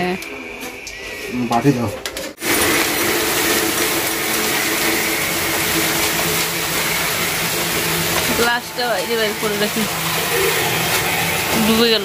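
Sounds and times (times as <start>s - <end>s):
rice pouring into plastic bucket: 2.4s - 11.8s.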